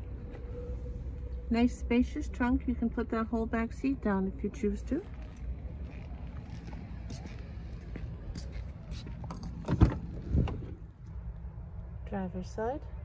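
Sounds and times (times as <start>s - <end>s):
steady low rumble: 0.0s - 13.0s
car trunk slamming shut: 9.6s - 10.7s.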